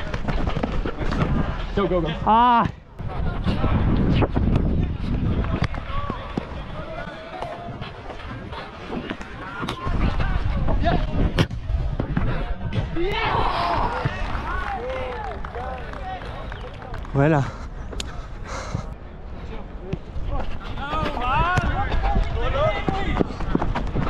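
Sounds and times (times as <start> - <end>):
running footsteps rumble: 0.0 - 2.2, 3.0 - 13.0, 13.6 - 24.0
wind on microphone: 3.0 - 14.4, 20.0 - 24.0.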